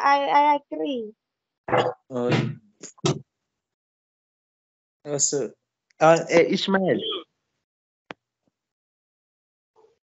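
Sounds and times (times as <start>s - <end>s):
spoken word: 1.7s - 3.2s, 5.1s - 7.2s.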